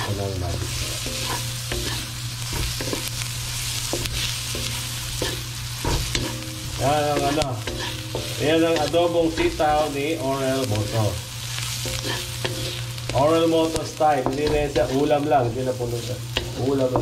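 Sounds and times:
spatula scraping metal pan: 0.0 - 3.1, 3.8 - 9.8, 11.8 - 13.0
food sizzling in oil: 0.0 - 17.0.

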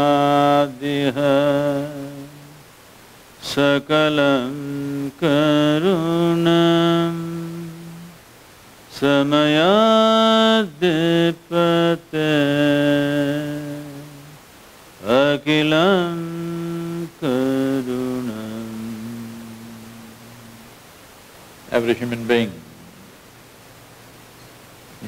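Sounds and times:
man chanting: 0.0 - 2.6, 3.4 - 8.2, 8.9 - 14.4, 15.0 - 20.6, 21.7 - 23.1.

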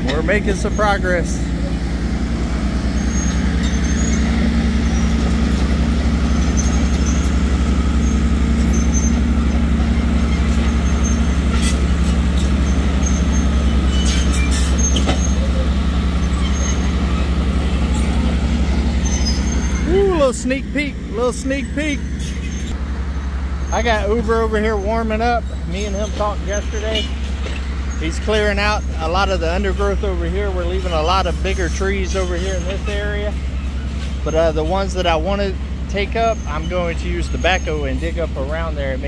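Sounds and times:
dozer engine drone: 0.0 - 39.0
faint high squeaks and clicks: 10.2 - 18.3.

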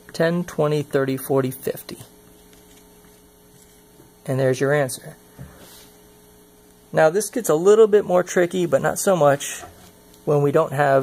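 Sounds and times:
faint electrical hum with hiss: 0.0 - 11.0.

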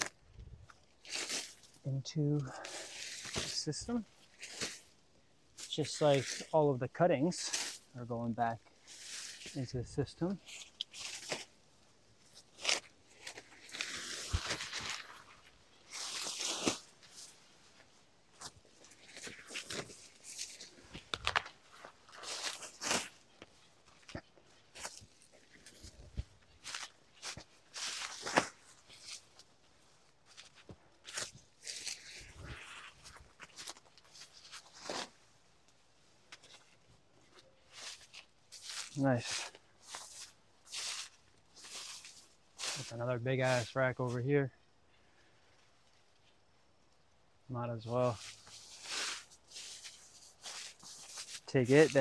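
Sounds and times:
footsteps crunching through undergrowth: 0.0 - 1.8, 2.4 - 5.0, 5.6 - 6.6, 7.3 - 35.3, 36.3 - 44.1, 48.0 - 52.0
banana leaves rustling and swishing: 0.9 - 1.8, 2.5 - 5.0, 8.8 - 9.6, 10.4 - 11.6, 12.3 - 29.4, 30.2 - 35.2, 37.6 - 43.7, 48.2 - 52.0.

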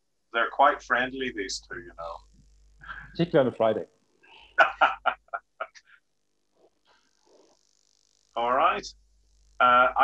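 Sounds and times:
man laughing: 4.4 - 6.0.

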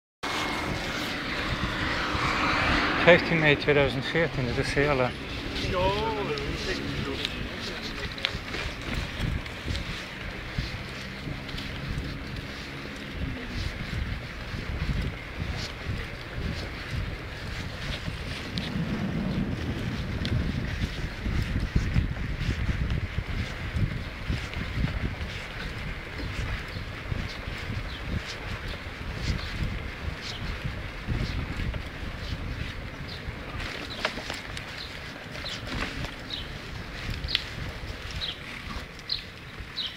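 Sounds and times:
bicycle rolling over asphalt: 0.2 - 39.9
wind on microphone: 0.2 - 39.9.

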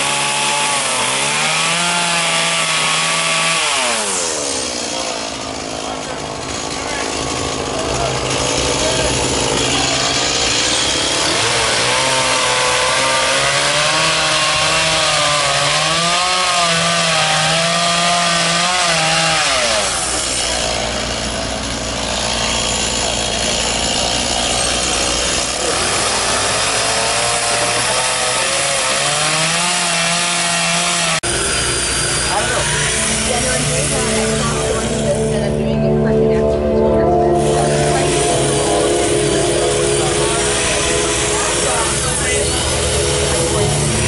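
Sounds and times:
chainsaw carving wood: 0.0 - 35.6, 37.3 - 44.0.

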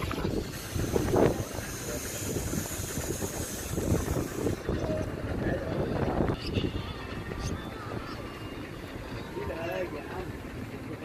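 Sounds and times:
wind on microphone: 0.0 - 8.2
sea water around a boat: 0.0 - 11.0.

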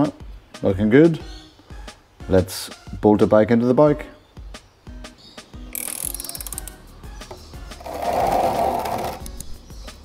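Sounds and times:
socket ratchet clicking: 5.7 - 6.8.

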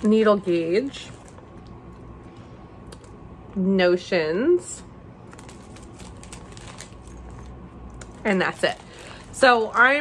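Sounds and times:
plastic bags clicking and rustling: 5.3 - 10.0.

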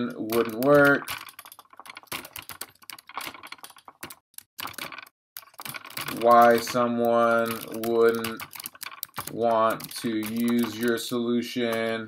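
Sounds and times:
typing on computer keyboard: 0.0 - 12.0.

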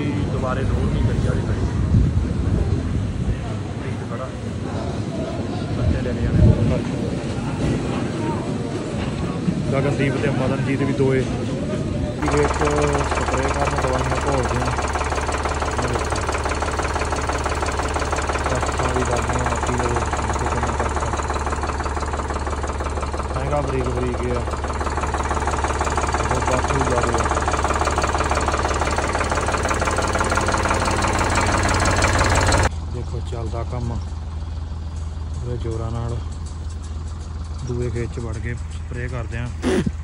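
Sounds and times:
tractor diesel engine idling: 0.0 - 40.0.

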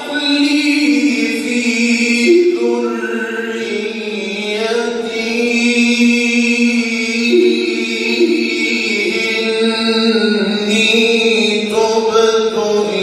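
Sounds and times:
man reciting melodically: 0.0 - 13.0.

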